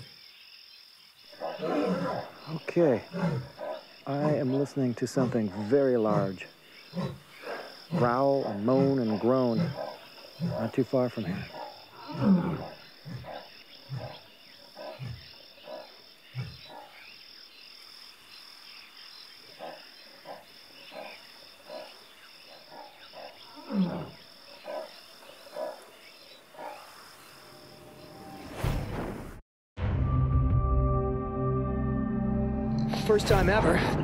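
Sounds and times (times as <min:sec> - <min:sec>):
pulsing insect chirp: 0:00.0 - 0:28.6
animal growling moaning calls: 0:01.6 - 0:14.2, 0:23.5 - 0:24.2.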